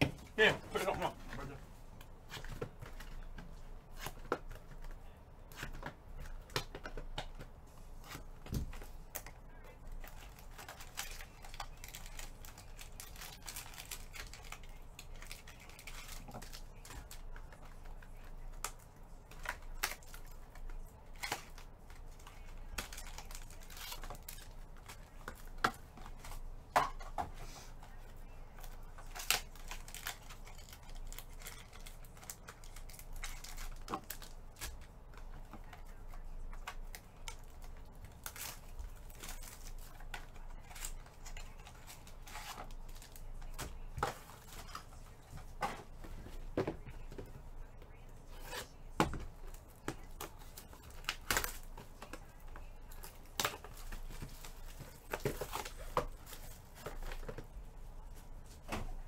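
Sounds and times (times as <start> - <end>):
shrink-wrapped boxes crinkling: 9.9 - 26.9, 27.8 - 47.3, 47.9 - 57.6.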